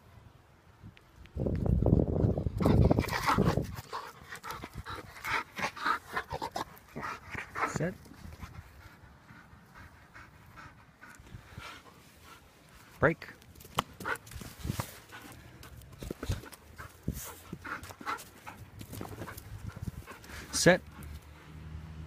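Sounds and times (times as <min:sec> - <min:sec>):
wind or microphone handling noise: 0:01.3 - 0:03.9, 0:14.3 - 0:15.0, 0:18.6 - 0:20.5
dog panting hard: 0:02.6 - 0:12.8, 0:14.0 - 0:14.4, 0:15.0 - 0:21.6.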